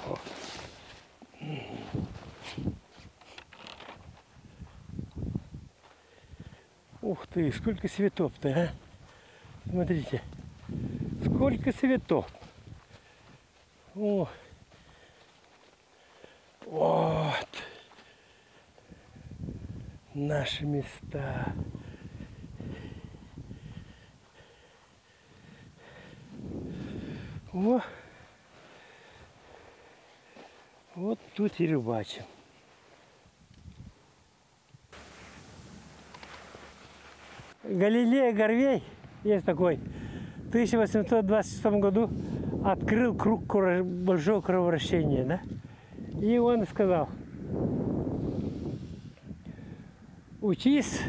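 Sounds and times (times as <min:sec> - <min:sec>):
clothing and gear rustling: 0:00.0 - 0:04.8, 0:14.7 - 0:16.4, 0:32.3 - 0:34.0, 0:35.0 - 0:37.6
footsteps on grass: 0:00.0 - 0:06.2, 0:08.7 - 0:18.9, 0:28.4 - 0:33.3, 0:35.0 - 0:37.9
faint steady hiss: 0:00.0 - 0:42.6.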